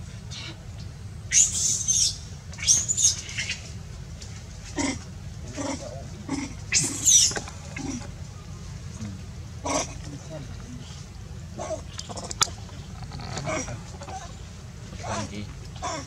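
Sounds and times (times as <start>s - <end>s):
monkey squeals: 1.3s - 3.6s, 5.6s - 8.0s
monkeys squeaky calls: 1.3s - 3.7s, 4.8s - 8.1s, 11.6s - 14.4s.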